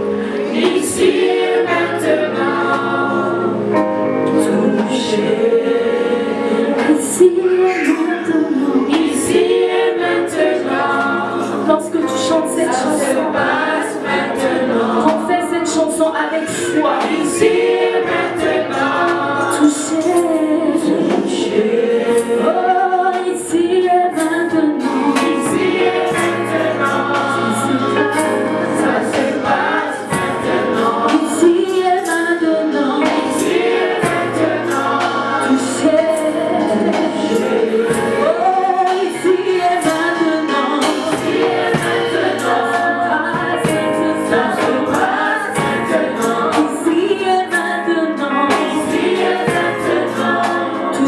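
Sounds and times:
group singing in harmony: 0.0s - 51.0s
keyboard accompaniment: 0.0s - 51.0s.

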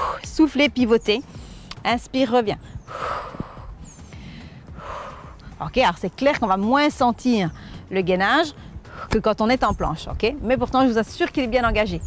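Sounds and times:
woman breathing hard: 0.0s - 0.2s, 2.6s - 5.6s.

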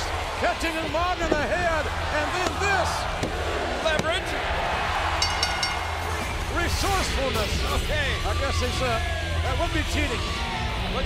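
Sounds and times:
arena crowd noise: 0.0s - 11.0s
ring bell ringing: 5.2s - 6.4s.

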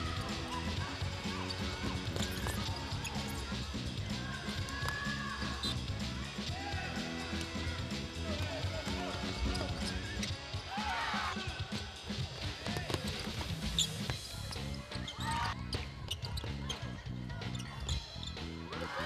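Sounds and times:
music playing: 0.0s - 19.0s.

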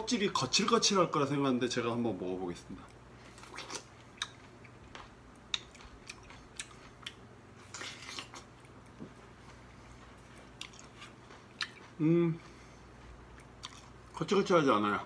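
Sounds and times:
man chewing fruit: 2.5s - 15.0s.

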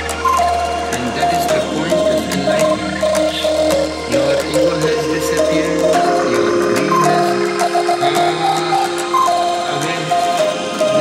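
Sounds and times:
low bass: 0.0s - 11.0s
percussion clicks: 0.0s - 11.0s
synth melody: 0.0s - 11.0s.

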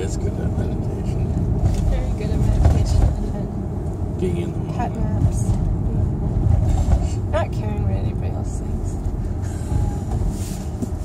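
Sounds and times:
car interior road rumble: 0.0s - 11.0s.

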